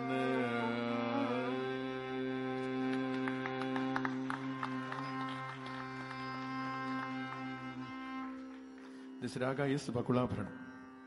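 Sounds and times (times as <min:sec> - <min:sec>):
tanpura drone: 0:00.0 - 0:11.0.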